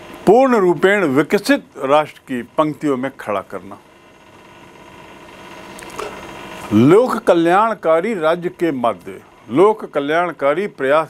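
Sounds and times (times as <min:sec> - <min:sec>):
faint hum tones: 0:00.0 - 0:11.0
room hiss: 0:00.0 - 0:11.0.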